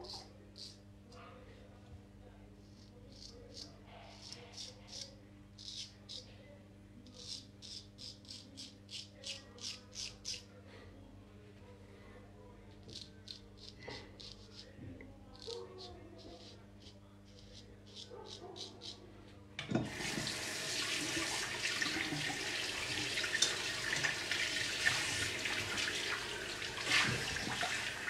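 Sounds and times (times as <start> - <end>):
razor scraping stubble: 2.7 - 6.3, 7.1 - 10.5, 12.8 - 19.0.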